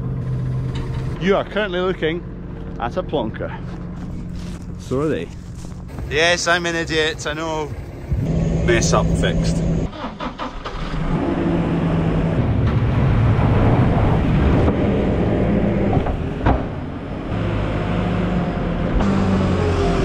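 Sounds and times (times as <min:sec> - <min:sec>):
diesel loader engine running: 0:00.0 - 0:20.0.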